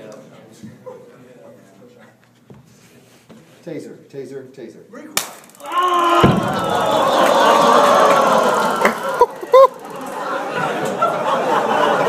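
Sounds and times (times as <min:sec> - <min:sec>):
taser electrical clicking: 0:05.2 - 0:05.7
men yelping: 0:05.6 - 0:10.6.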